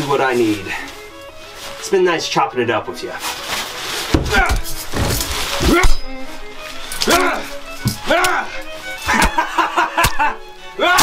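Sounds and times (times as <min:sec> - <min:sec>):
dramatic music: 0:02.9 - 0:11.0
heavy thuds: 0:04.0 - 0:08.4
man crying out in pain: 0:07.0 - 0:08.7.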